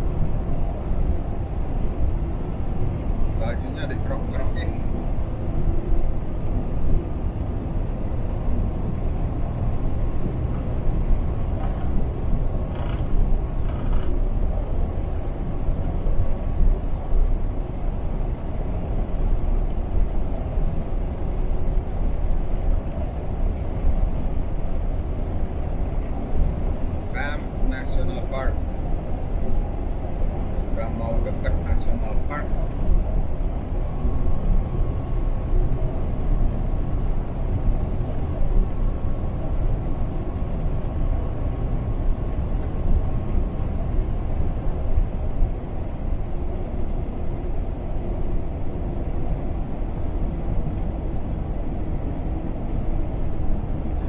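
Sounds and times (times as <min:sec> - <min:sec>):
road and engine rumble: 0:00.0 - 0:54.0.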